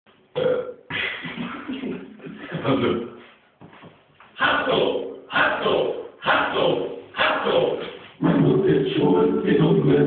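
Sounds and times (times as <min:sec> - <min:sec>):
man burping: 0:00.3 - 0:01.7.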